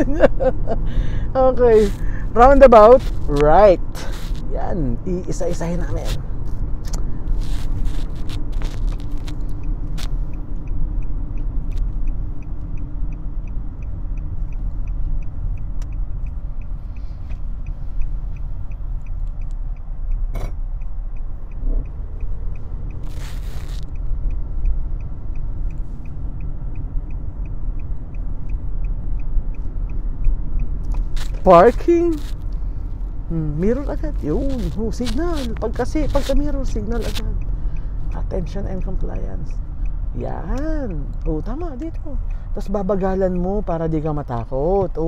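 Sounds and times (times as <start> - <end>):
car road and engine rumble: 0.0 - 45.0
turn signal ticking: 0.0 - 45.0.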